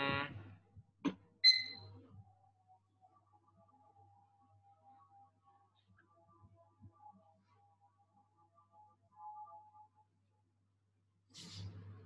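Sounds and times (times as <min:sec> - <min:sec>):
person humming: 0:00.0 - 0:00.5.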